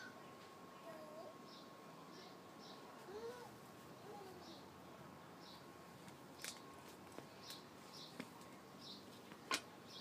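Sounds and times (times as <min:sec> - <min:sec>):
small bird chirping: 0:00.0 - 0:04.8, 0:07.3 - 0:09.2.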